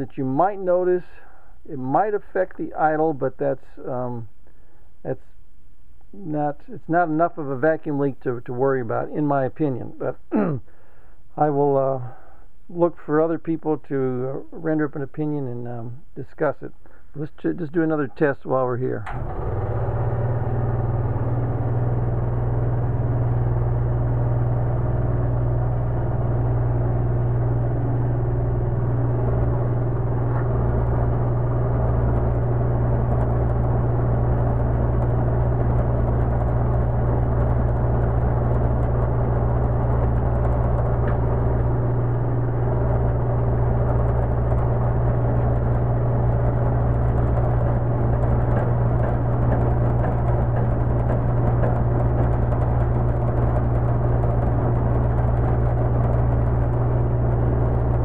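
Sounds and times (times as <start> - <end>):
vacuum pump humming: 19.0 - 58.0.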